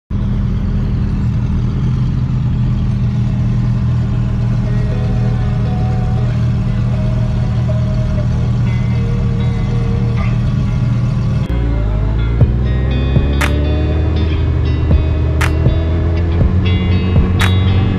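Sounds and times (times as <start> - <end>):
motorcycle engine idling: 0.1 - 17.9.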